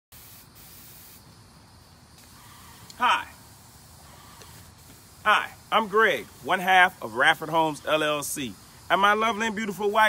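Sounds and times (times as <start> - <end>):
spray hiss: 0.1 - 10.0.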